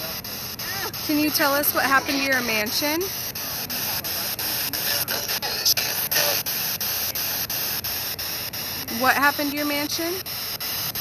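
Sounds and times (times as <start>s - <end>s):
faint radio voices: 0.0s - 11.0s
static hiss: 0.0s - 11.0s.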